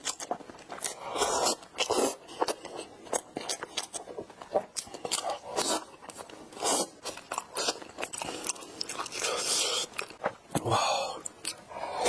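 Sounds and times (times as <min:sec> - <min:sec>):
biting and chewing bread: 0:00.0 - 0:11.7.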